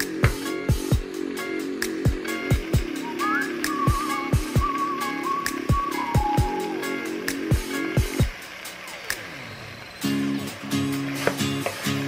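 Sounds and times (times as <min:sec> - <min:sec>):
steady drum beat: 0:00.0 - 0:09.2
whistle-like melody: 0:01.4 - 0:08.3.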